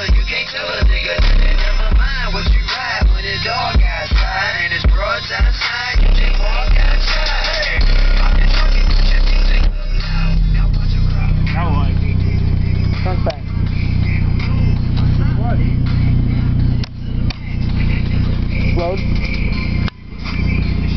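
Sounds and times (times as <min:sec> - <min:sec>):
bass-heavy music through subwoofer: 0:00.0 - 0:20.9.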